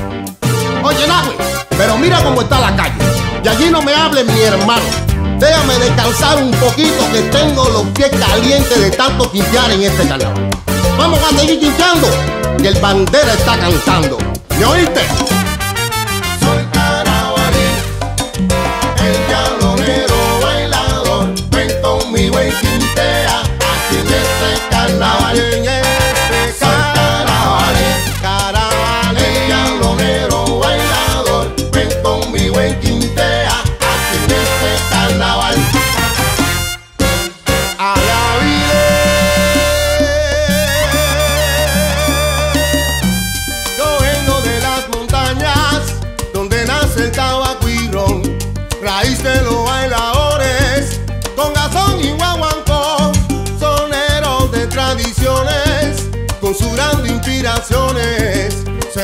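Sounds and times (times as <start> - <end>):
percussion: 0.0 - 59.0
rhythmic bass line: 0.0 - 59.0
salsa band instrumental: 0.0 - 59.0
lead singer singing: 19.2 - 36.0, 37.8 - 42.6.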